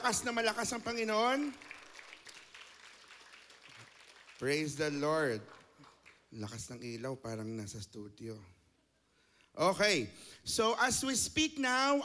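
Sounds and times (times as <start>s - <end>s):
congregation applauding: 0.0s - 6.6s.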